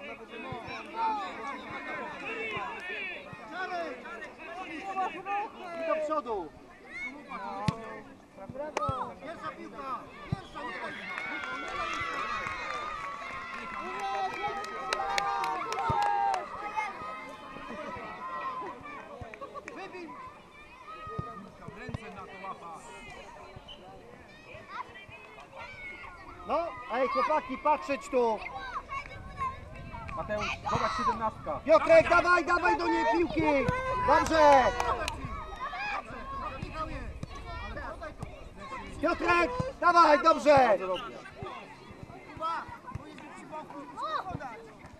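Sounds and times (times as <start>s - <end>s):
spectators' voices: 0.0s - 44.9s
children shouting and calling: 6.6s - 7.7s, 9.7s - 19.2s, 19.8s - 21.6s, 24.1s - 44.9s.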